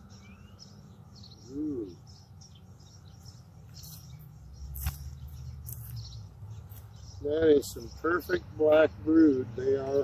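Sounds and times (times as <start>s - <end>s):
small birds chirping: 0.0s - 10.0s
sharp click: 4.7s - 6.0s.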